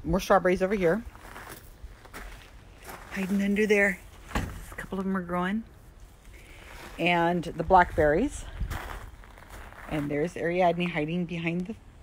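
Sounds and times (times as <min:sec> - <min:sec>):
soft footsteps on ground: 0:00.6 - 0:11.8.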